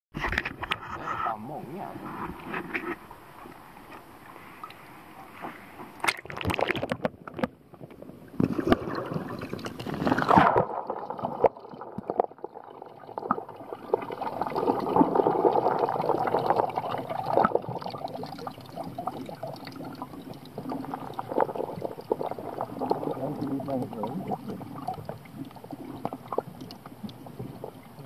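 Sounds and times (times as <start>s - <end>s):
water splashing: 6.0s - 7.5s, 8.4s - 28.0s
muffled underwater gurgling: 9.1s - 28.0s.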